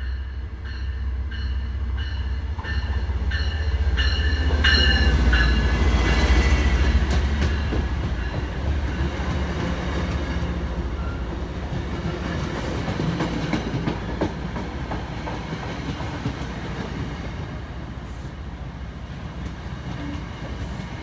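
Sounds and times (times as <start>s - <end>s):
locomotive bell ringing: 0.0s - 6.6s
diesel locomotive engine rumble: 0.0s - 21.0s
train wheels clacking over rail joints: 4.1s - 10.4s, 11.8s - 17.1s.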